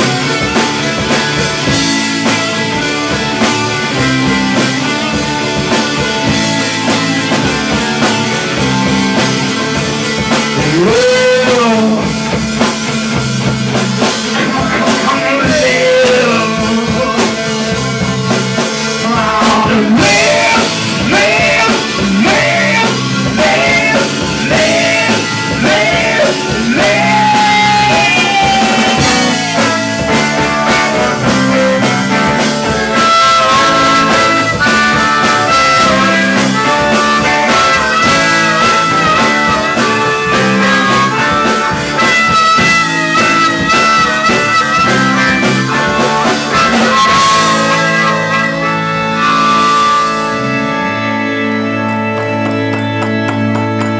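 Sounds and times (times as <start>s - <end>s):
live rock band: 0.0s - 53.9s
harmonica wailing: 14.3s - 53.9s.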